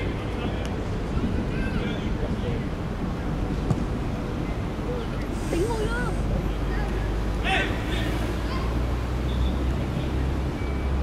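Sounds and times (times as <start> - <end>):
players shouting: 7.0 - 8.8.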